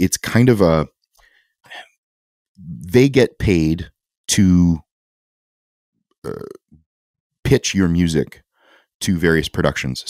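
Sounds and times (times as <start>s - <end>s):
man saying uh: 2.6s - 4.8s, 6.3s - 6.6s.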